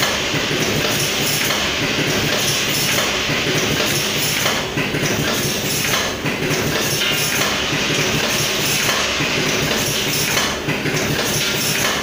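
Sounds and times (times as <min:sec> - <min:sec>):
packing machine clattering: 0:00.0 - 0:12.0.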